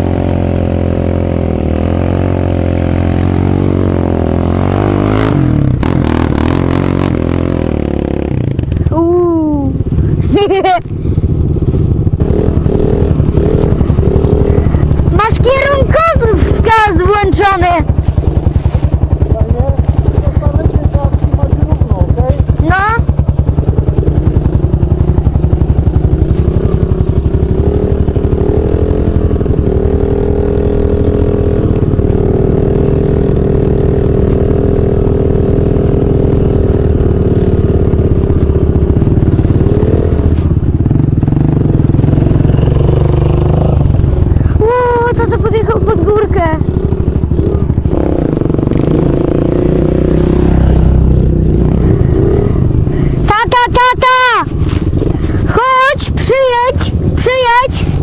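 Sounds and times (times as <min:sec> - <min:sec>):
dirt bike engine running hard: 0:00.0 - 0:58.0.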